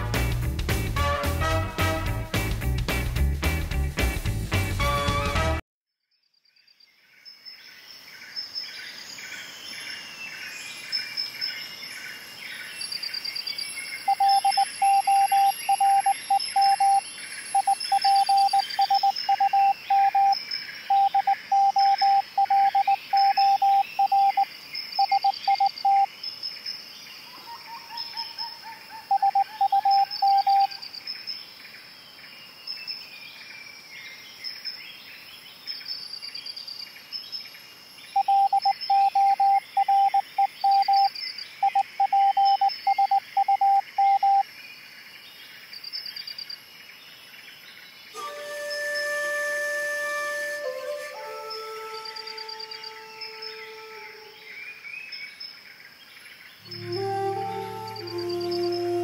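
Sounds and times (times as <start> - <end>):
birds chirping: 8.4 - 26.4, 50.1 - 55.6, 56.6 - 59.0
morse code radio tone: 14.1 - 17.0, 17.6 - 26.1, 29.1 - 30.7, 38.2 - 44.4, 56.7 - 59.0
short falling whistle: 48.2 - 54.4.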